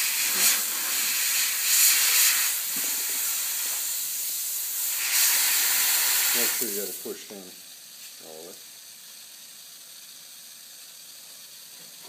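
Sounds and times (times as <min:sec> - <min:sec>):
compressed air hissing: 0:00.0 - 0:09.7.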